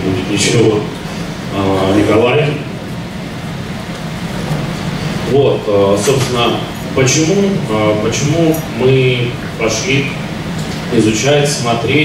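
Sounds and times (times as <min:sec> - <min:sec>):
pa system hiss: 0:00.0 - 0:12.0.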